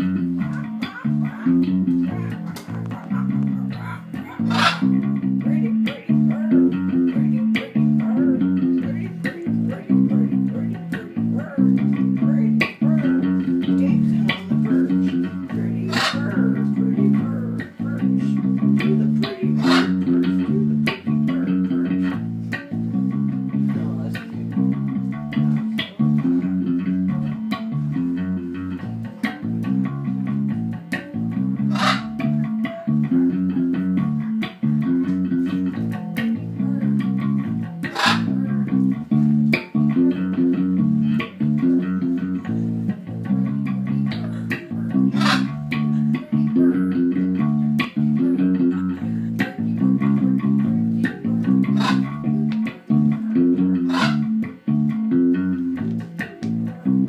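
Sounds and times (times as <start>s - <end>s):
electric bass guitar riff: 0.0s - 57.0s.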